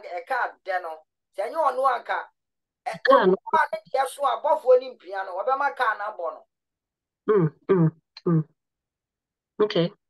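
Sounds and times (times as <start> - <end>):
person making short vocal sounds: 7.3 - 8.6.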